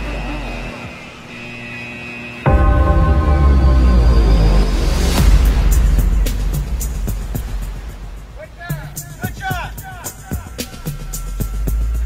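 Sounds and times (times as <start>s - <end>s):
held high electronic tone: 0.0s - 5.8s
noisy wash: 0.0s - 12.0s
low bass: 2.5s - 8.4s.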